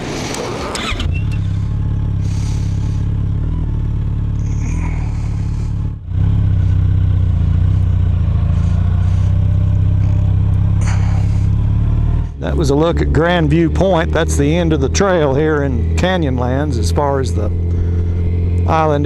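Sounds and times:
motorcycle engine running at low revs: 0.0s - 19.0s.

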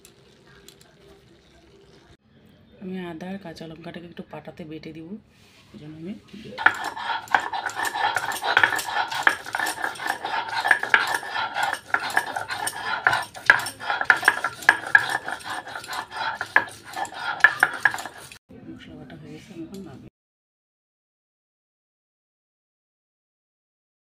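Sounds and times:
stone roller grinding on slab: 6.6s - 18.4s.

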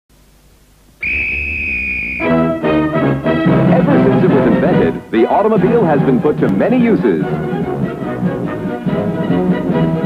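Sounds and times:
faint tape hiss: 0.1s - 10.0s
high whistle note: 1.0s - 2.6s.

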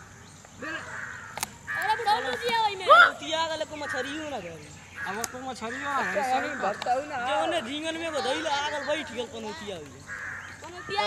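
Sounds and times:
man speaking: 3.2s - 10.0s.

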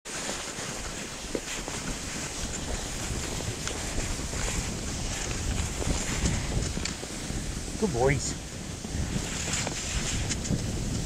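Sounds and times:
skis gliding on snow: 0.1s - 11.0s
wind buffeting microphone: 0.6s - 11.0s.

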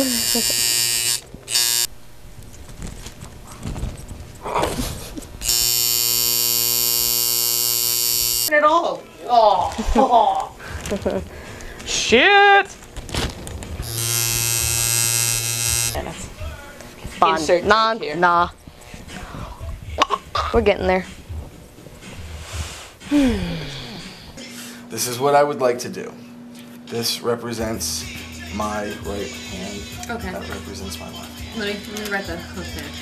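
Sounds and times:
tattoo machine buzzing: 0.0s - 3.4s, 5.2s - 8.5s, 13.8s - 16.6s.

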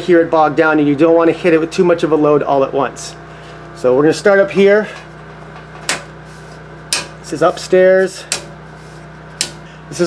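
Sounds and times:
steady low hum: 0.0s - 10.0s
circuit breakers clicking: 4.9s - 6.2s, 6.9s - 7.4s, 8.2s - 8.6s, 9.4s - 9.6s.

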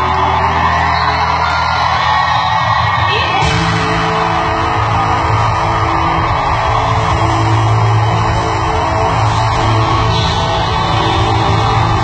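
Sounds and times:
live rock band over pa: 0.0s - 12.0s.

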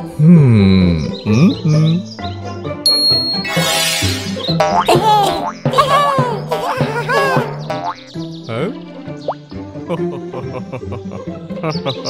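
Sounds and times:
cartoon background music: 0.0s - 12.0s
springy boing sound effects: 4.6s - 5.8s, 6.4s - 8.2s.

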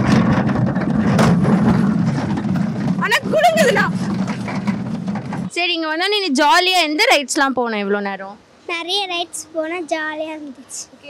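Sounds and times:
roller coaster cars rumbling: 0.0s - 5.9s
rider squealing: 1.7s - 5.5s.

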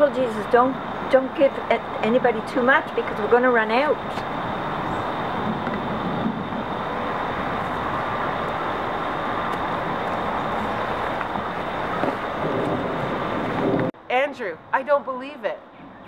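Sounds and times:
rushing outdoor background noise: 0.0s - 16.0s.

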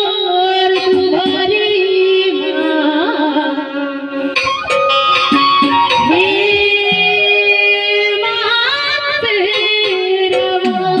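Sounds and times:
instrumental accompaniment: 0.0s - 11.0s
hand drum strokes: 4.4s - 11.0s.

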